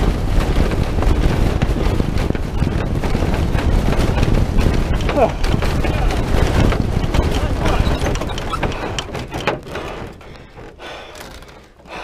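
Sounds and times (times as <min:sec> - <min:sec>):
rushing wind noise in cockpit: 0:00.0 - 0:12.0
sharp knocks: 0:00.5 - 0:10.8.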